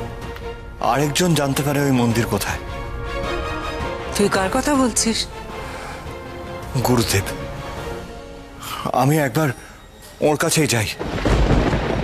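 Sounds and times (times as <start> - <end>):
low thunder-like rumble: 11.0 - 12.0.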